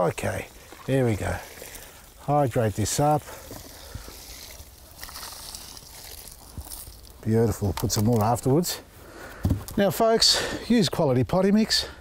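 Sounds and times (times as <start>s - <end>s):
water pouring onto soil: 0.0s - 8.4s.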